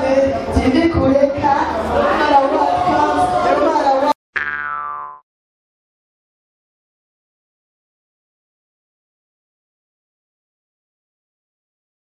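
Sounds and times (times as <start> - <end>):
voices from stage: 0.0 - 4.2.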